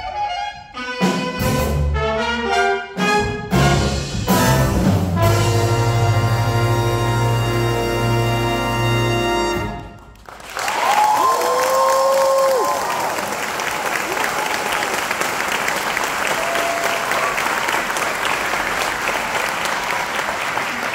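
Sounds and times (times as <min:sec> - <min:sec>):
audience applauding: 0:09.8 - 0:20.9
long cheer: 0:10.3 - 0:20.9.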